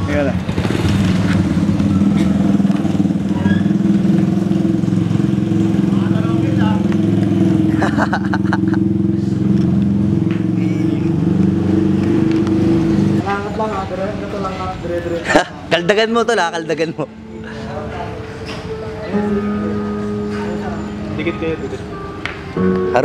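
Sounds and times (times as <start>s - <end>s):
vehicle engine low hum: 0.0s - 14.2s
voices: 1.2s - 23.0s.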